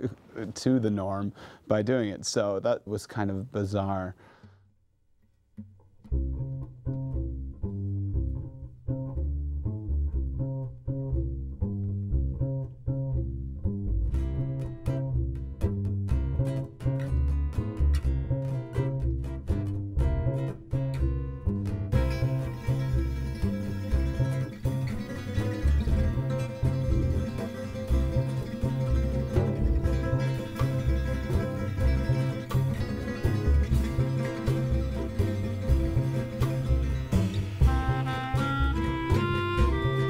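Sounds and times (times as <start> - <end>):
upright bass plucked: 5.6 - 40.0
acoustic guitar strumming: 15.9 - 40.0.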